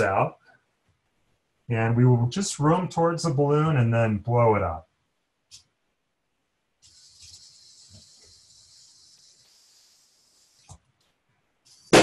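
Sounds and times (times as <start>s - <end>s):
servos whirring: 6.8s - 10.9s
balloon popping: 11.7s - 12.0s.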